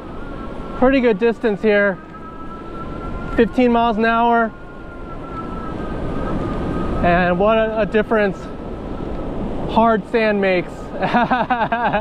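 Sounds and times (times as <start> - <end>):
wind and tyre noise: 0.0 - 12.0.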